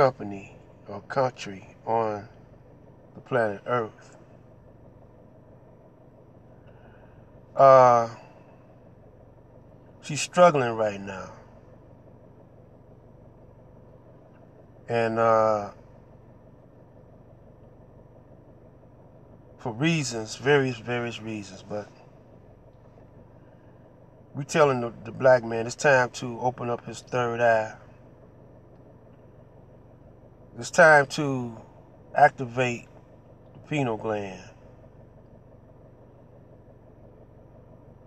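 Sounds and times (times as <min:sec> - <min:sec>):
car cabin hum: 0:00.0 - 0:38.0.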